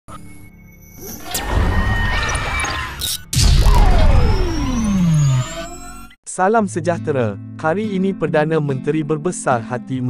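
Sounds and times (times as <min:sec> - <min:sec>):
falling synth tone: 0:01.0 - 0:06.2
deep rumbling boom: 0:03.3 - 0:05.6.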